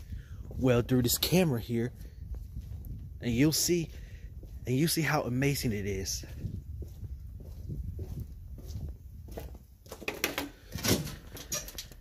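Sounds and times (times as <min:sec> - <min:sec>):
wind rumble on microphone: 0:00.0 - 0:10.0
knocks and rustles: 0:09.9 - 0:12.0.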